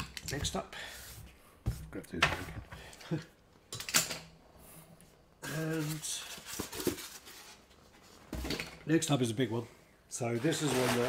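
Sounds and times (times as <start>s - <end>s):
plastic wrap rustling: 10.4s - 11.0s.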